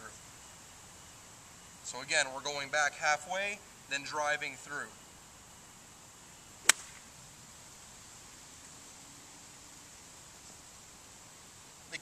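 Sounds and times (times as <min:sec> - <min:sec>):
golf club striking ball: 0:06.6 - 0:07.1.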